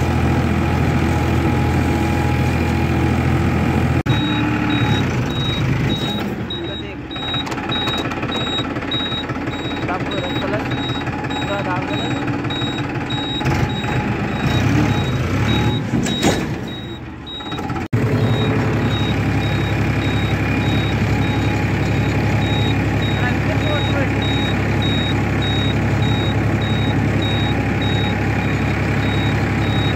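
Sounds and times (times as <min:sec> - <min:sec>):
tractor diesel engine running: 0:00.0 - 0:29.9
short high beeps: 0:04.1 - 0:17.6, 0:18.2 - 0:29.9.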